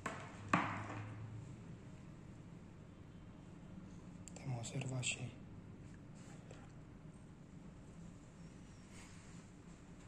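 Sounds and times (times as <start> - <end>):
faint low hum: 0.2 - 10.0.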